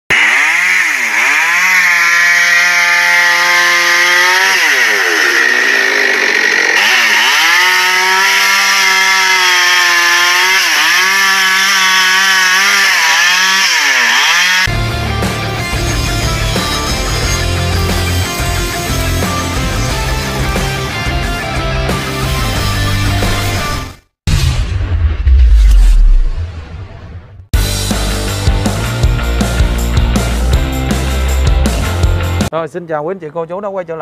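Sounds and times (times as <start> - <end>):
electric chainsaw cutting log: 0.1 - 24.0
rock music: 14.6 - 24.6, 27.6 - 32.5.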